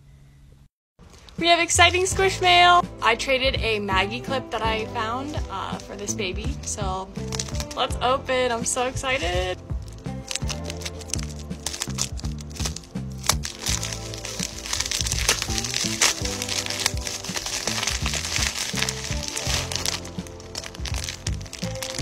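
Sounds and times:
music with steady bass beat: 1.8 - 22.0
plastic bag crinkling: 7.2 - 7.8, 9.0 - 22.0
scissors cutting plastic: 7.2 - 7.8, 9.1 - 22.0.

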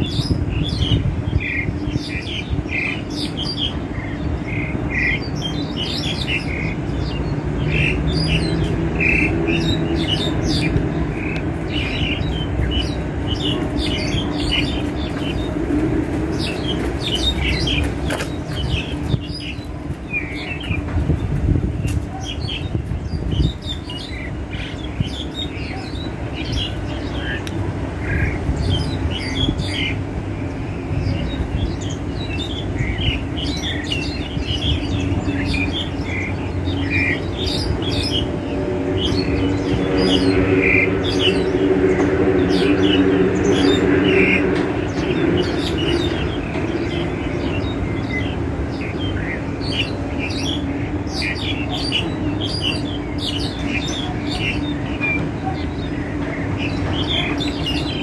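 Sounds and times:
starling chirping and squawking: 0.0 - 58.0.

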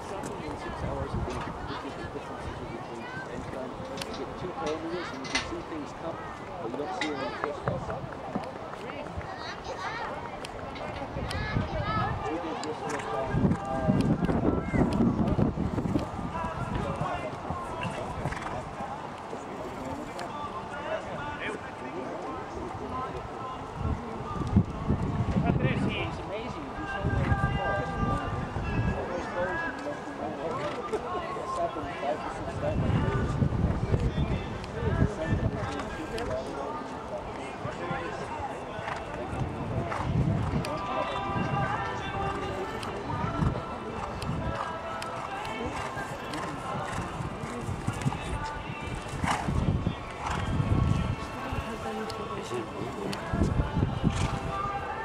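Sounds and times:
distant voices: 0.0 - 55.0
people talking: 0.0 - 55.0.

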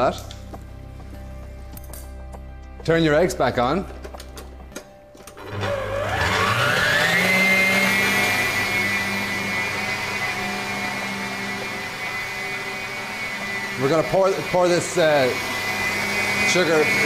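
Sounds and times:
stand mixer motor whining: 5.3 - 17.0.

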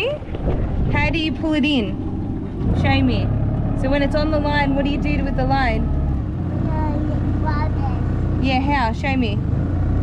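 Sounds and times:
outboard motor droning: 0.0 - 10.0.

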